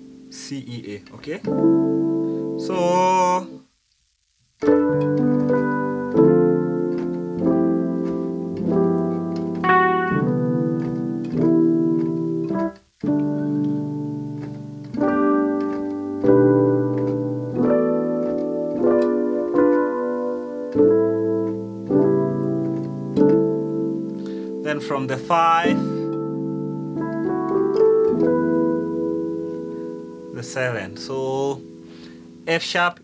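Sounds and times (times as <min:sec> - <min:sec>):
electric piano chords: 0:00.0 - 0:03.9, 0:04.6 - 0:33.0.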